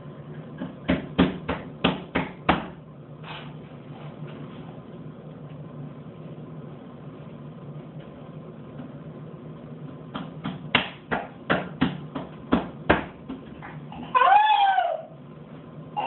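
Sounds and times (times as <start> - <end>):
faint steady hum: 0.0 - 16.0
hands slapping a mirror: 0.6 - 2.8, 10.1 - 13.8.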